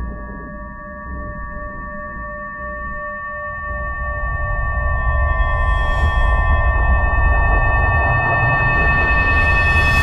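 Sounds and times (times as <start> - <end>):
ringing drone: 0.0 - 10.0.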